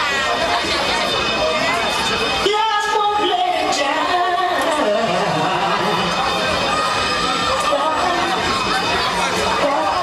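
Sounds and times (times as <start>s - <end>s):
crowd shouting and cheering: 0.0s - 10.0s
loud dance music: 0.0s - 10.0s.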